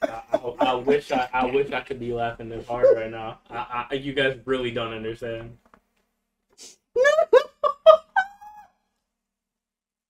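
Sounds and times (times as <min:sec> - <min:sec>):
high-pitched laughing cry: 0:07.0 - 0:08.7.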